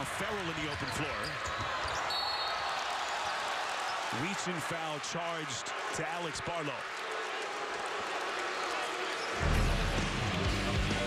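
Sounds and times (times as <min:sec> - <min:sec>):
arena crowd noise: 0:00.0 - 0:11.0
referee's whistle: 0:01.2 - 0:02.8.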